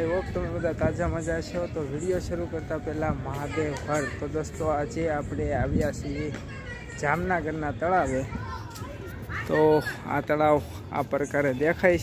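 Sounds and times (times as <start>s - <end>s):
man speaking close to microphone: 0.0s - 6.4s, 7.0s - 8.3s, 9.4s - 12.0s
faint voices: 0.0s - 12.0s.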